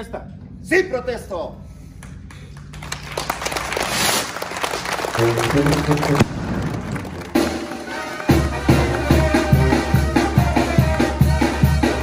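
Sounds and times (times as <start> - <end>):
crowd clapping: 2.0 - 12.0.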